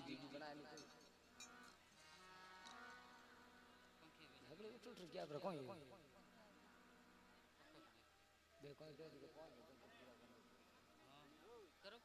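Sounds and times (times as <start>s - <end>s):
man's voice over loudspeaker: 0.0s - 1.1s, 4.0s - 6.6s, 8.6s - 11.3s.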